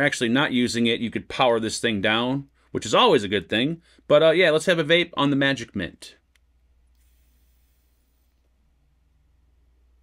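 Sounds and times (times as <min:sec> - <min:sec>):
low steady hum: 0:05.0 - 0:10.0
faint high hiss of vape draw: 0:06.9 - 0:08.6.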